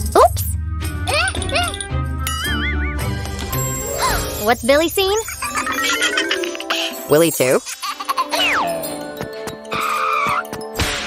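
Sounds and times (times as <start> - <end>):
cartoon background music: 0.0 - 11.0
warbling cartoon sound effect: 5.2 - 7.0.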